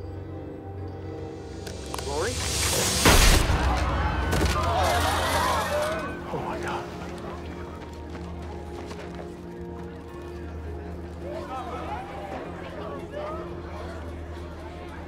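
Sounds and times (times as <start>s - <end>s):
crowd screaming and shouting: 3.2s - 6.9s.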